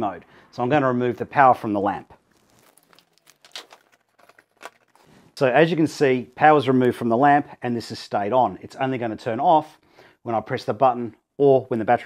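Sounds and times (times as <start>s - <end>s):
light clicks and rustling: 2.4s - 5.1s.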